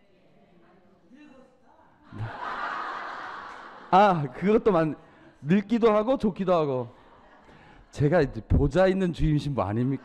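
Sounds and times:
audience laughing: 2.1s - 4.2s, 9.6s - 10.0s
man's voice: 3.9s - 6.9s, 7.9s - 10.0s.

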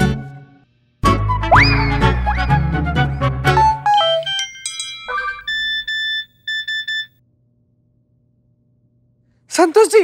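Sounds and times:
music: 0.0s - 4.5s
phone alert high beeps: 5.1s - 7.1s.

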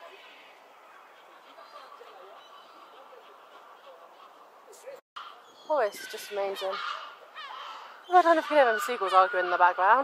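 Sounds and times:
murmur of city noise: 0.0s - 10.0s
seagulls calling: 0.0s - 10.0s.

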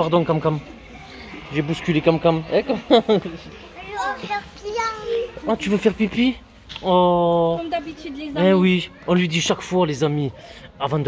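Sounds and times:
toddler speaking: 3.8s - 5.4s.

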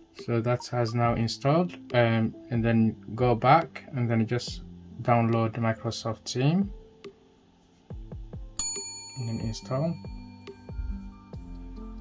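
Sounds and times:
soft background music: 0.0s - 12.0s
bright bell ding: 8.6s - 10.9s.

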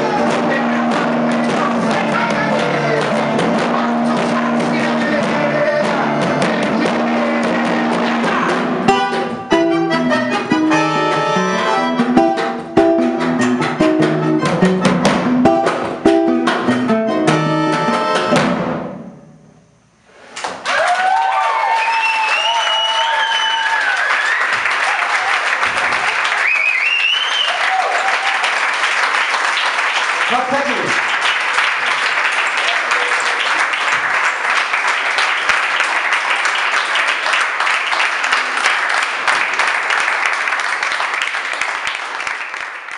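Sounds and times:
drum: 0.0s - 9.7s, 12.0s - 19.1s
accordion: 0.0s - 18.7s
strummed acoustic guitar: 0.0s - 19.1s
audience applauding: 20.4s - 42.9s
whistles from audience: 21.4s - 24.6s, 26.3s - 28.1s.

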